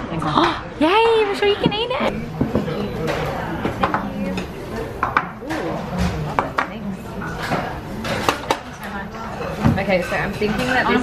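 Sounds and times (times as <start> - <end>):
chatter of voices: 0.0 - 11.0
dishes and cutlery clinking: 1.2 - 11.0.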